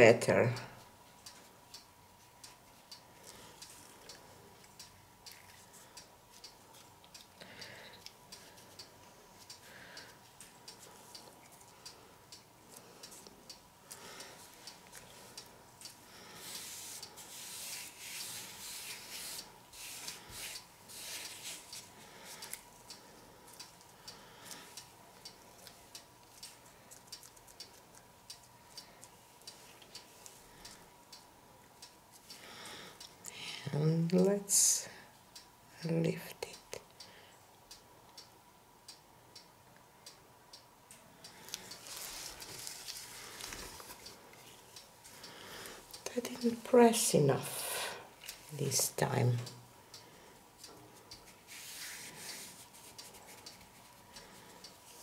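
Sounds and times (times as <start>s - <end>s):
faint regular ticking: 0.4s - 34.2s, 34.8s - 55.0s
gloved hands rubbing canvas: 16.4s - 21.8s.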